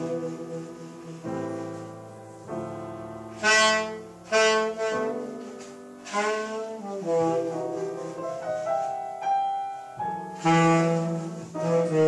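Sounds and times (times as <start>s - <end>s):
jazz saxophone: 0.0s - 12.0s
piano playing: 0.0s - 12.0s.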